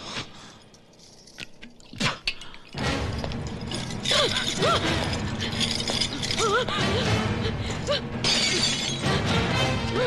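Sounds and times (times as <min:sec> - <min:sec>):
dramatic film music: 0:02.7 - 0:10.0.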